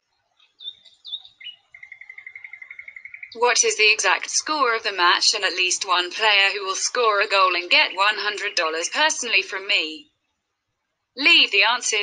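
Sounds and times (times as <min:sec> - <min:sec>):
bird chirping and trilling: 0:00.4 - 0:03.6.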